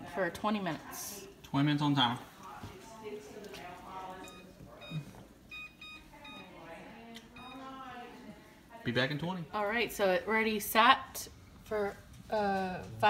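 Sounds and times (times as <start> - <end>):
quiet talk: 0.0 - 9.0
kitchen timer beeping: 4.2 - 6.5, 7.3 - 7.7.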